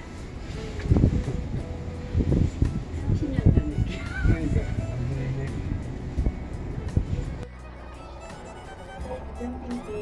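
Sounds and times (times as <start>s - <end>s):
wind buffeting microphone: 0.0s - 7.5s
cable car cabin rumble: 0.0s - 10.0s.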